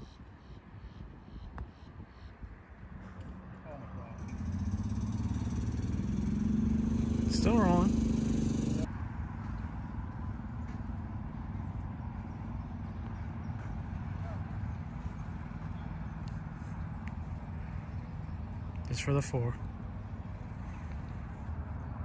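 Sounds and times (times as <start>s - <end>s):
low motor hum: 3.0s - 18.9s.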